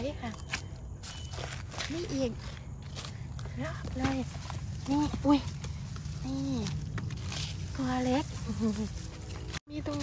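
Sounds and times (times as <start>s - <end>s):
woman speaking: 0.0s - 0.4s, 1.8s - 2.6s, 3.4s - 5.6s, 7.7s - 8.8s, 9.6s - 10.0s
footsteps in dry leaves: 0.0s - 10.0s.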